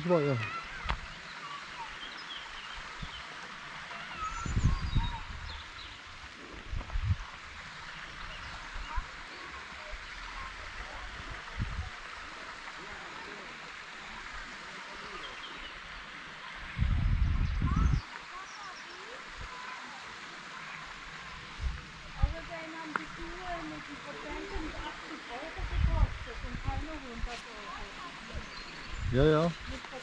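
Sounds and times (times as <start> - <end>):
small birds chirping: 0.0 - 11.4, 12.3 - 21.5, 22.2 - 30.0
steady outdoor hiss: 0.0 - 30.0
low rumbles on the microphone: 4.3 - 9.2, 10.0 - 12.2, 16.6 - 18.0, 21.5 - 23.2, 24.6 - 27.3.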